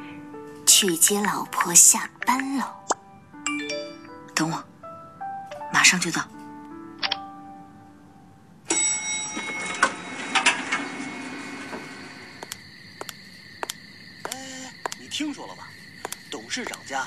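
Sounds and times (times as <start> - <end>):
steady high hum: 10.8 - 17.0.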